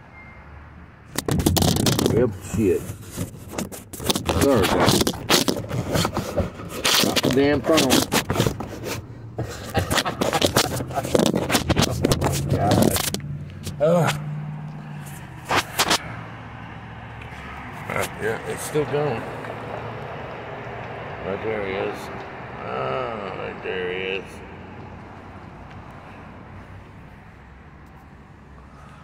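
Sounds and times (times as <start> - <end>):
phone handling crackling and scraping: 1.1 - 14.2, 15.0 - 16.0
car engine idling: 2.1 - 29.0.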